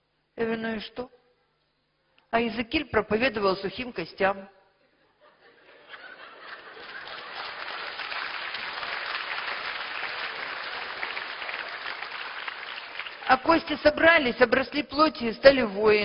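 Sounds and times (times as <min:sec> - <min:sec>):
congregation applauding: 0:06.4 - 0:13.5.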